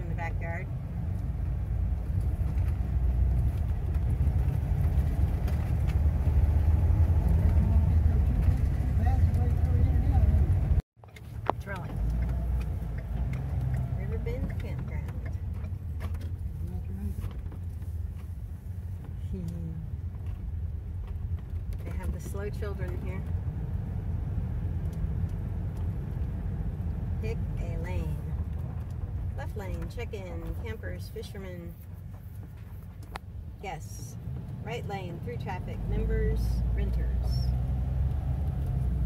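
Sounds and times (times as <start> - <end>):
vehicle road and engine rumble: 0.0 - 39.0.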